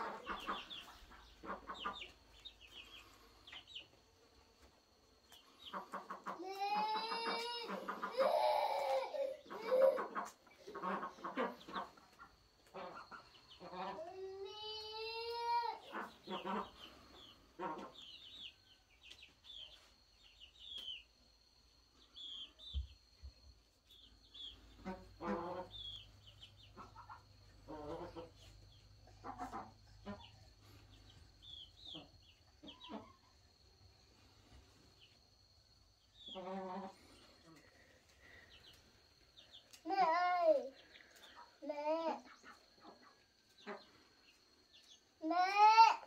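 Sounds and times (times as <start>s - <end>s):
chickens clucking: 0.0s - 20.0s, 23.9s - 45.1s.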